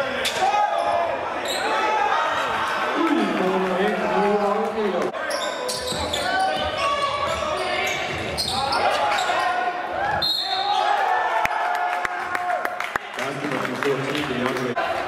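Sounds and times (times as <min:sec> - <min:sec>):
sneakers squeaking on court: 0:05.2 - 0:09.4.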